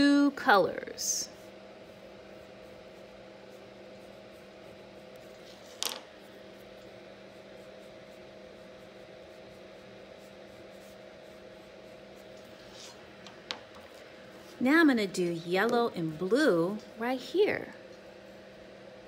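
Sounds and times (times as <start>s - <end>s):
low room hum: 0.0s - 19.0s
crayon scratching on paper: 1.4s - 5.6s, 6.7s - 13.0s.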